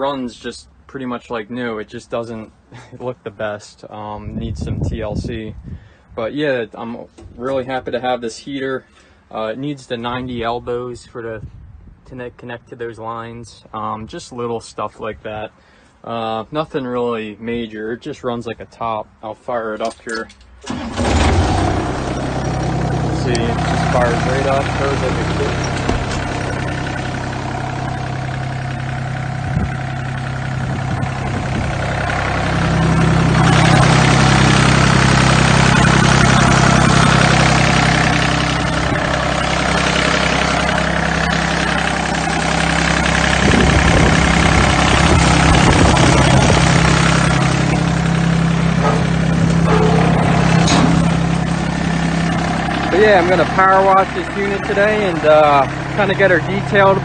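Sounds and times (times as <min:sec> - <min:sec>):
mower diesel engine running: 0:20.6 - 0:57.0.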